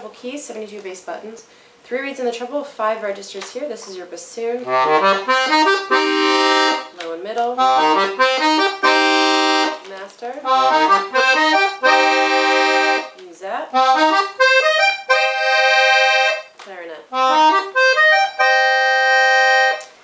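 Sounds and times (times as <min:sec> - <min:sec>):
accordion runs and chords: 0:04.6 - 0:16.5, 0:17.1 - 0:20.0.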